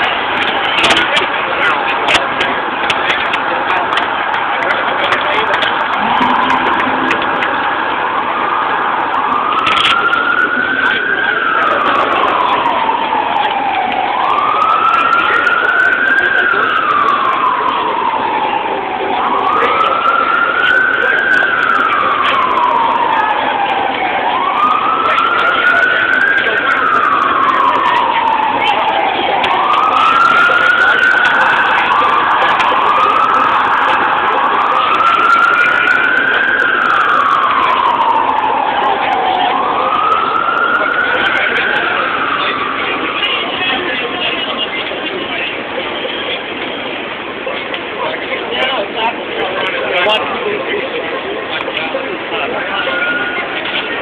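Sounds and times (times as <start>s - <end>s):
emergency vehicle siren wailing: 0.0s - 54.0s.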